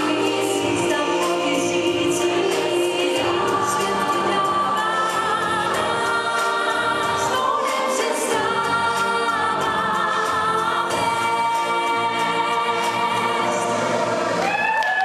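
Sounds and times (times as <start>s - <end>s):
backing music: 0.0s - 15.0s
person singing pop song: 0.0s - 15.0s.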